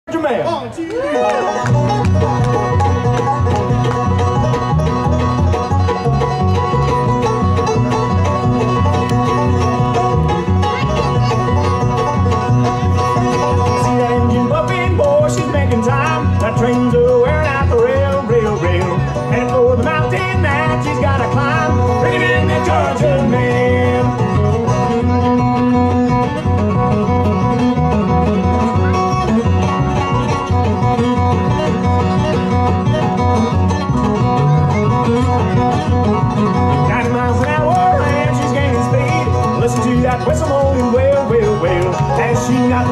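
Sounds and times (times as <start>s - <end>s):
bluegrass band playing: 0.1s - 42.9s
sliding fiddle melody: 1.4s - 42.9s.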